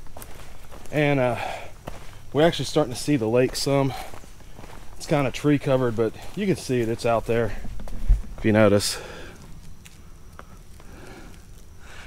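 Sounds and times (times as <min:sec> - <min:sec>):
faint footsteps on dirt trail: 0:00.0 - 0:12.0
steady low rumble: 0:00.0 - 0:12.0.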